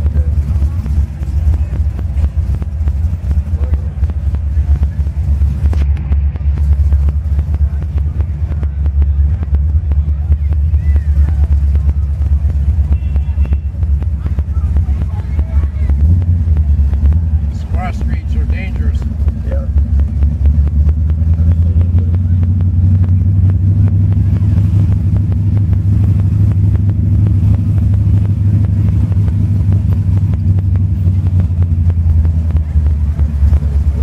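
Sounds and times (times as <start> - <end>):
car engine running: 0.0 - 34.0.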